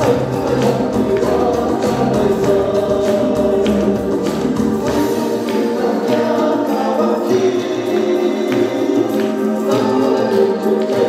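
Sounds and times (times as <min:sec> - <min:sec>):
andean folk band music: 0:00.0 - 0:11.0
chorus of voices singing: 0:00.0 - 0:11.0.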